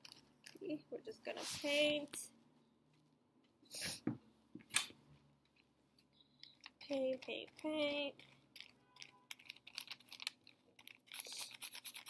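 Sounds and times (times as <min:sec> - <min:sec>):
paper crinkling: 0:06.4 - 0:12.0
paintbrush scratching on paper: 0:11.1 - 0:12.0.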